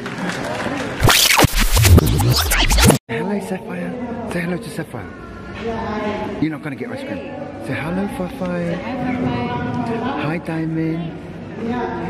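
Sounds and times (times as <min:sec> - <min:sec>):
heavy bass beat: 0:01.0 - 0:03.0
record scratching: 0:01.0 - 0:03.0.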